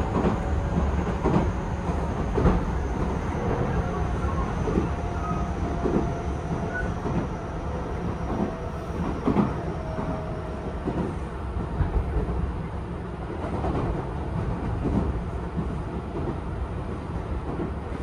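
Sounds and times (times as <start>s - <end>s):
train running rumble: 0.0s - 18.0s.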